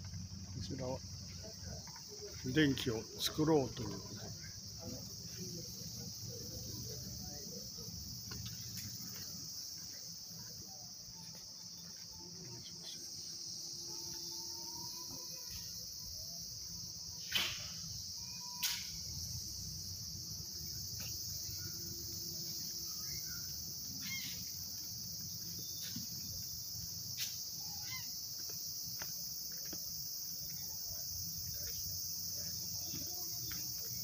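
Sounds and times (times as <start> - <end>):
crickets trilling: 0.0 - 34.0.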